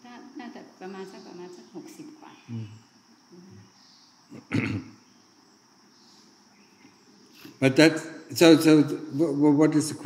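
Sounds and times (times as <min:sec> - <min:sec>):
insects chirring: 0:00.0 - 0:10.0
person coughing: 0:04.4 - 0:04.9.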